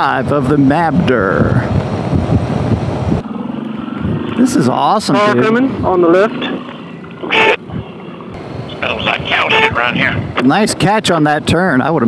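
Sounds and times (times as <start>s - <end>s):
motorcycle engine hum: 0.0s - 11.4s
wind rush on microphone: 0.0s - 12.0s.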